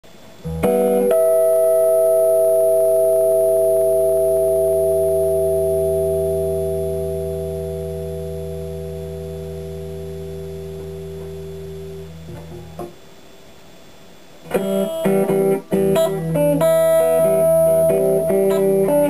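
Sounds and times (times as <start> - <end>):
electric guitar chord ringing: 0.4 - 13.0, 14.5 - 19.0.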